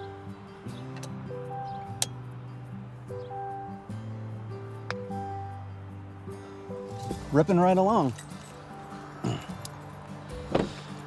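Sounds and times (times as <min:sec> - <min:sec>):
background music with steady tones: 0:00.0 - 0:11.0
car door shutting: 0:10.3 - 0:10.9.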